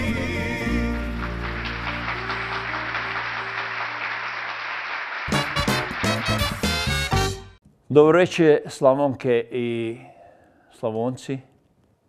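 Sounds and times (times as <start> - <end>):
applause: 0.9 - 7.2.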